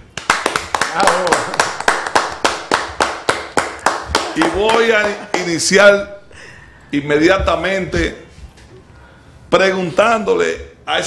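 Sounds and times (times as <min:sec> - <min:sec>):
group clapping: 0:00.0 - 0:05.8.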